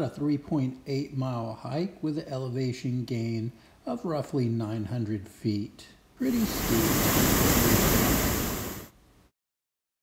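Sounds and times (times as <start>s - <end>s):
waterfall rushing water: 6.2s - 8.9s.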